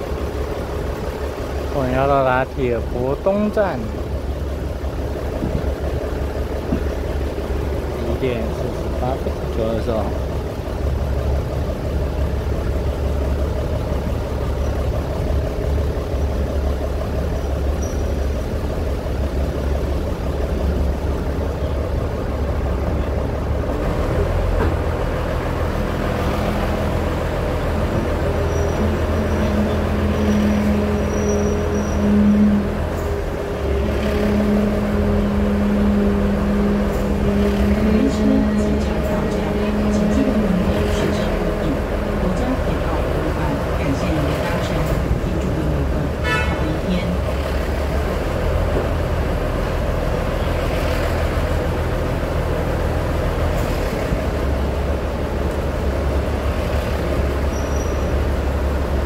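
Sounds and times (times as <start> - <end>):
diesel railcar engine droning: 0.0 - 59.0
higher steady drone: 25.0 - 48.4.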